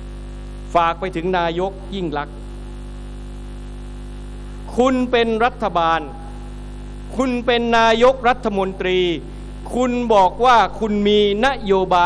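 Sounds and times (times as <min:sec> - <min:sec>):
electrical mains hum: 0:00.0 - 0:12.0
amplified man speaking: 0:00.7 - 0:02.5, 0:04.7 - 0:06.5, 0:07.1 - 0:12.0.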